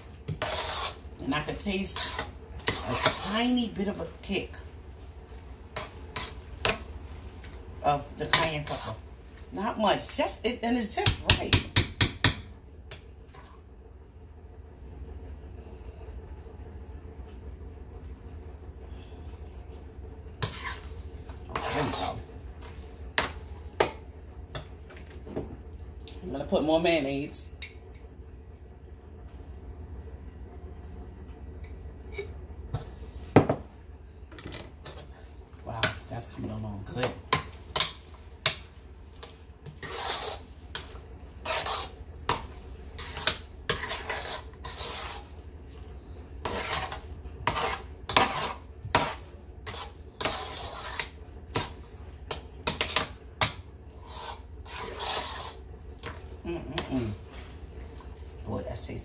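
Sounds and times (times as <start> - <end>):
utensil scraping metal pot: 0.3 - 4.5, 5.7 - 6.9, 7.9 - 9.0, 20.4 - 22.3, 39.2 - 45.4, 46.0 - 53.2, 53.9 - 56.2.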